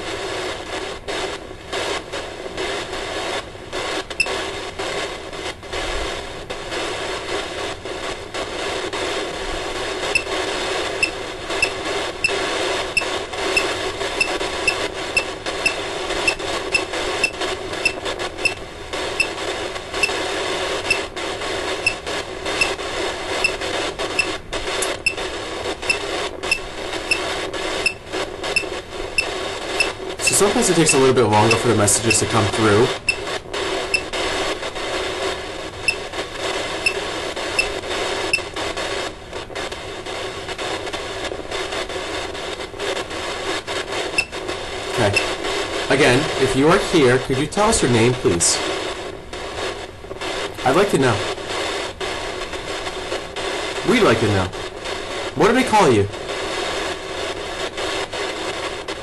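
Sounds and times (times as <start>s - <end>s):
radio static hiss: 0.0s - 59.0s.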